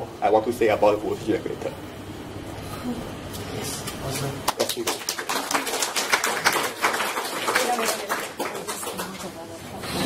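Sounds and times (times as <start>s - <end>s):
small audience applauding: 4.4s - 9.4s.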